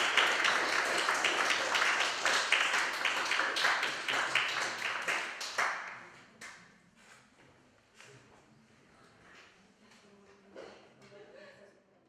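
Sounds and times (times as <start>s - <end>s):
audience applause: 0.0s - 6.0s.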